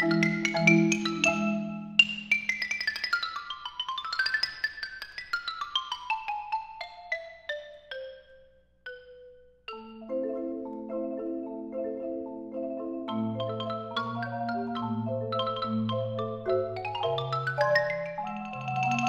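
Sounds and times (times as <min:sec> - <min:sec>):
solo xylophone run: 0:00.0 - 0:04.5, 0:05.6 - 0:19.0
marimba ensemble playing: 0:00.0 - 0:04.7, 0:05.3 - 0:19.0.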